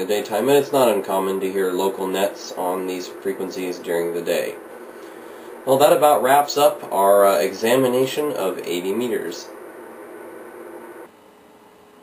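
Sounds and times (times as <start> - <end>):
radio static hiss: 0.0 - 11.2.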